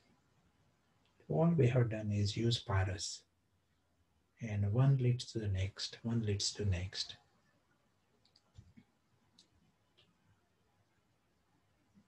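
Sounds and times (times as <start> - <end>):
man speaking: 1.3 - 3.2, 4.4 - 7.2.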